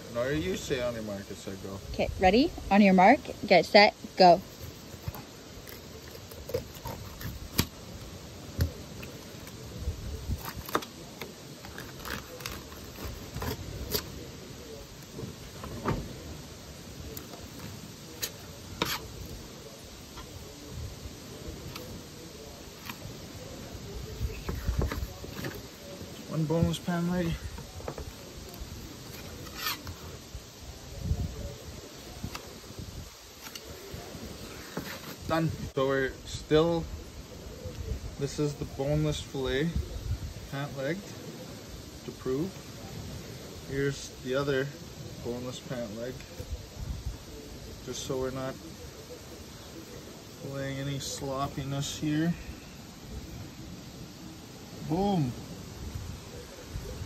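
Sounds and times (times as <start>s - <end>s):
knife scraping on cutting board: 18.8s - 19.2s.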